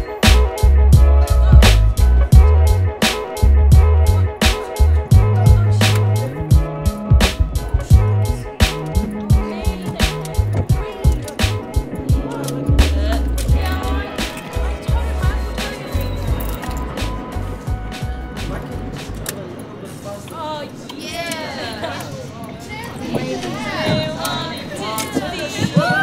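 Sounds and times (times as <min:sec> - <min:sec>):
hip hop drum beat: 0:00.0 - 0:19.2
low bassline: 0:00.0 - 0:19.3.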